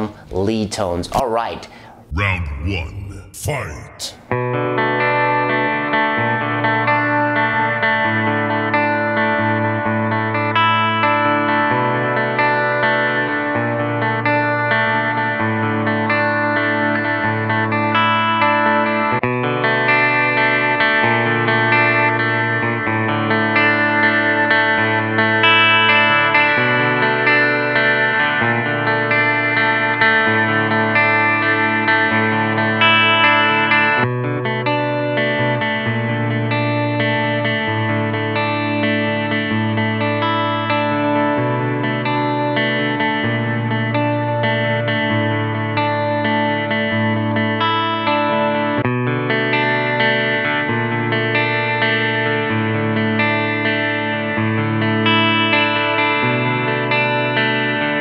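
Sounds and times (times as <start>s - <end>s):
clean electric guitar chords: 2.0s - 58.0s.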